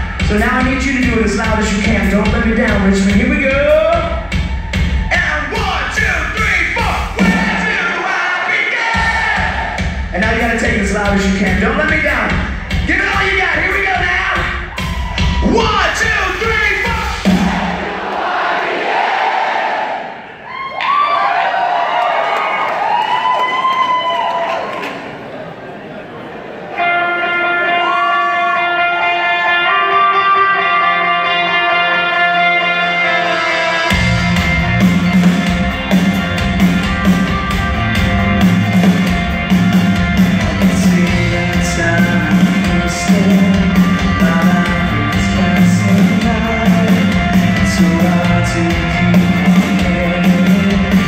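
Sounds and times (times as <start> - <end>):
live rock band: 0.0 - 18.0, 26.8 - 51.0
crowd cheering and singing: 0.0 - 51.0
electric guitar chords: 26.7 - 51.0.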